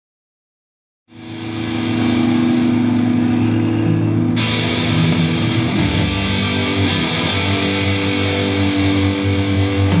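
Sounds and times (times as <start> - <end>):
band holding low chord drone: 1.2 - 10.0.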